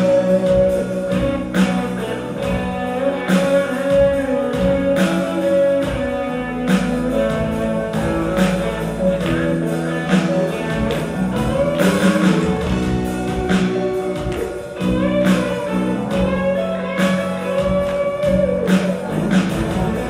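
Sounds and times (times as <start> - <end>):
held keyboard notes: 0.0 - 20.0
live band playing: 0.0 - 20.0.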